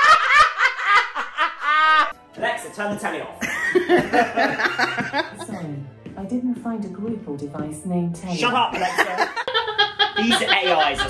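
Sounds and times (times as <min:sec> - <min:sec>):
man laughing hard: 0:00.0 - 0:02.1, 0:03.4 - 0:05.4, 0:08.8 - 0:11.0.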